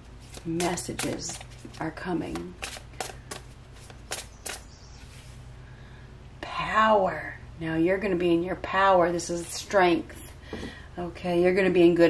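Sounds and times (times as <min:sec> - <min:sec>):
cards being shuffled: 0:00.2 - 0:05.2.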